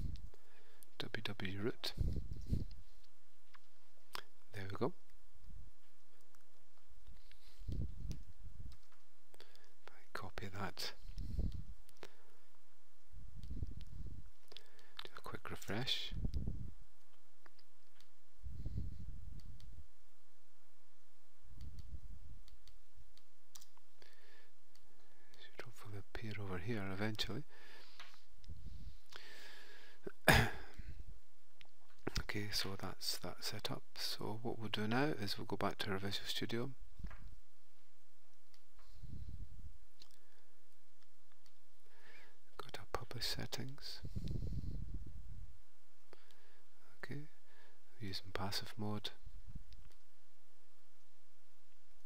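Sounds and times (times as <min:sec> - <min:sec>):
low microphone rumbles: 0:01.9 - 0:02.9, 0:07.6 - 0:08.8, 0:13.2 - 0:14.4, 0:16.1 - 0:16.9, 0:44.0 - 0:45.7
computer mouse clicking: 0:08.0 - 0:09.7, 0:19.3 - 0:19.7, 0:21.6 - 0:23.9, 0:24.7 - 0:25.0, 0:41.0 - 0:41.6
person half-whispering: 0:09.8 - 0:11.5, 0:15.0 - 0:16.3, 0:42.6 - 0:44.2.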